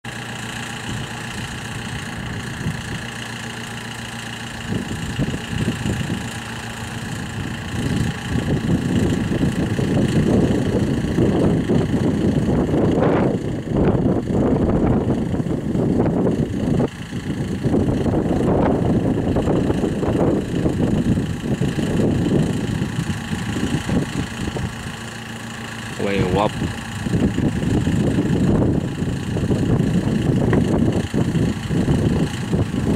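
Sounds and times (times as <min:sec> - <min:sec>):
jet engines idling: 0:00.1 - 0:32.9.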